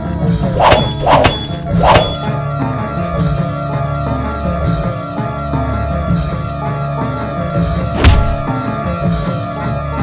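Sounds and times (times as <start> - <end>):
swords clashing: 0.6 - 2.4, 8.0 - 8.5.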